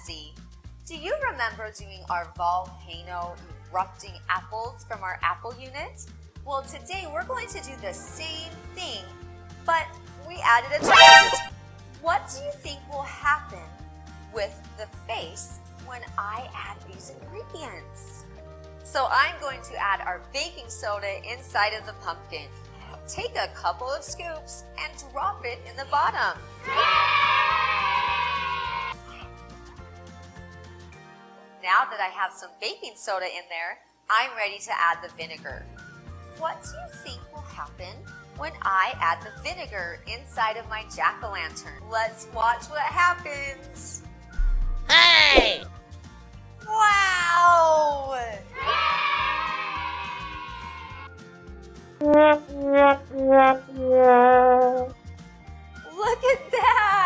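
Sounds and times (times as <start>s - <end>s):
soft background music: 0.0s - 27.1s, 28.9s - 49.6s, 51.0s - 57.0s
sad trombone sound effect: 10.8s - 11.5s, 52.0s - 54.9s.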